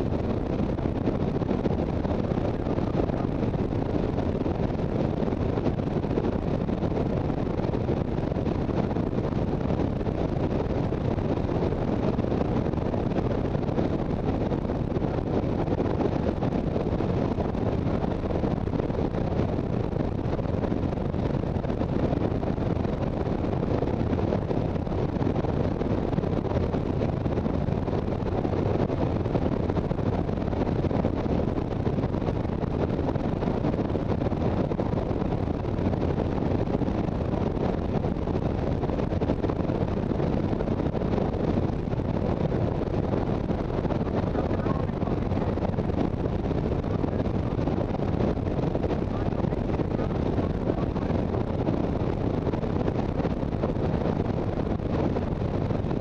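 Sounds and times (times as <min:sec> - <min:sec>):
wind rushing on microphone: 0:00.0 - 0:56.0
road noise: 0:42.6 - 0:50.8.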